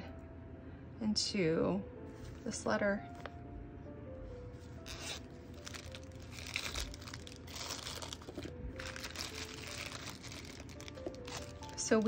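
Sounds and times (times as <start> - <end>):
plastic bag crinkling: 4.8 - 12.0.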